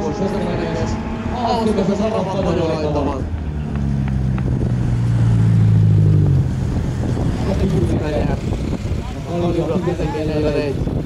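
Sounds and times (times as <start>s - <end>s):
drag racing car engines: 0.0s - 11.0s.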